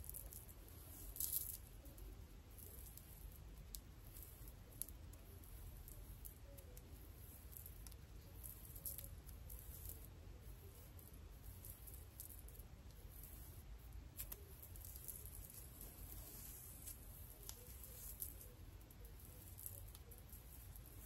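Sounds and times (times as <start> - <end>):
hair rustling and squishing: 0.0 - 6.2, 13.3 - 21.0
small crackles: 0.0 - 21.0.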